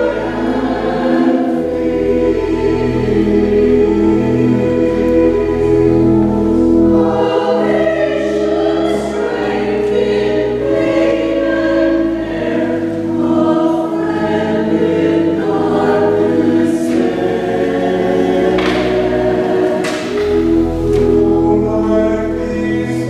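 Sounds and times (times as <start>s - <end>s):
choir singing in sustained chords: 0.0s - 23.0s
organ bass notes: 0.0s - 23.0s.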